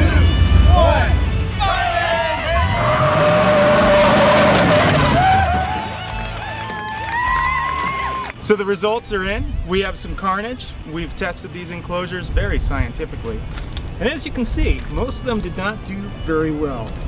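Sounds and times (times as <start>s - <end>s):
truck engine passing: 0.0s - 6.8s
men whooping and yelling: 0.0s - 9.6s.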